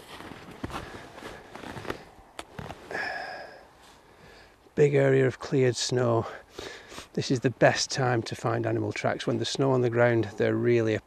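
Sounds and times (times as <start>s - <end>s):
footsteps in snow: 0.0s - 4.0s
short breath: 2.9s - 4.6s, 6.4s - 7.1s.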